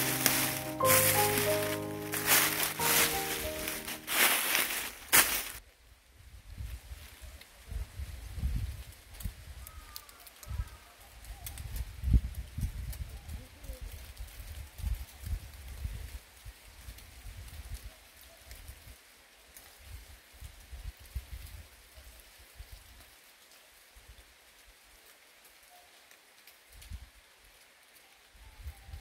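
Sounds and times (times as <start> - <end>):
dry leaves rustling: 0.0 - 5.6.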